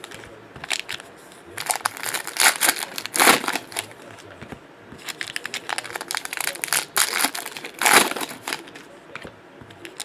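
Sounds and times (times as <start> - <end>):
foil wrapper crinkling: 1.6 - 4.0, 5.0 - 8.8.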